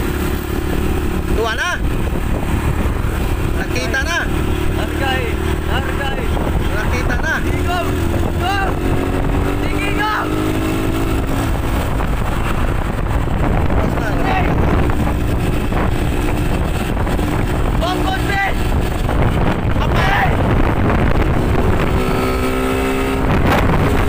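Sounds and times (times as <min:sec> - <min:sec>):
vehicle engine running: 0:00.0 - 0:24.0
wind rumble on microphone: 0:00.0 - 0:24.0.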